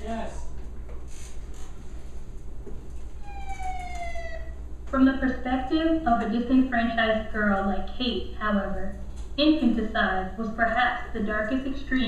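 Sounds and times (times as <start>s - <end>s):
steady low hum: 0.0s - 12.0s
siren gliding down in pitch: 3.2s - 4.6s.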